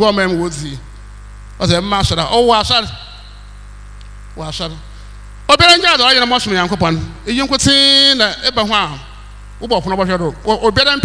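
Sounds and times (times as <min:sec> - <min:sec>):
man speaking into a microphone: 0:00.0 - 0:01.0, 0:01.6 - 0:03.4, 0:04.4 - 0:11.0
electrical mains hum: 0:00.0 - 0:11.0.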